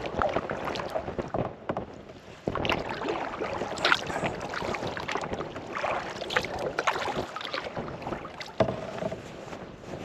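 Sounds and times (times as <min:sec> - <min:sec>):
paddle strokes splashing in water: 0:00.0 - 0:10.0.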